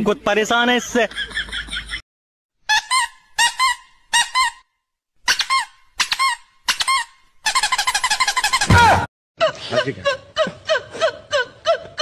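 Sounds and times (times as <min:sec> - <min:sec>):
high cartoon squeaks: 0:02.7 - 0:09.0.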